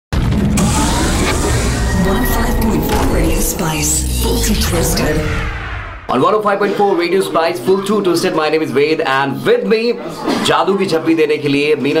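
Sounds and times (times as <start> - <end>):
deep bass rumble effect: 0.2 - 6.1
sharp hit: 0.2 - 6.2
radio jingle music: 0.6 - 6.1.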